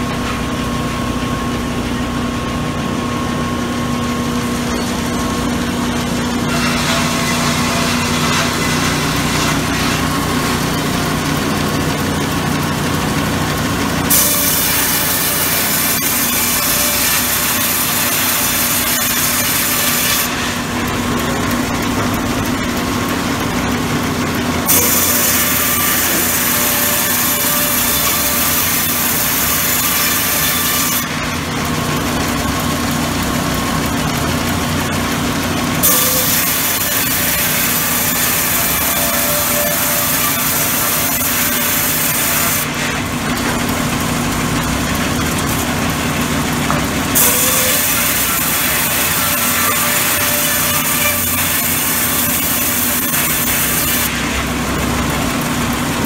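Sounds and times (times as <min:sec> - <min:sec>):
saw machine hum: 0:00.0 - 0:56.0
saw ripping through log: 0:04.3 - 0:56.0.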